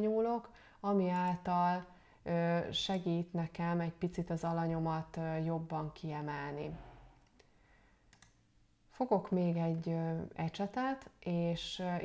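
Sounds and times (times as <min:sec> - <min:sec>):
faint sharp clicks: 0:08.1 - 0:08.4.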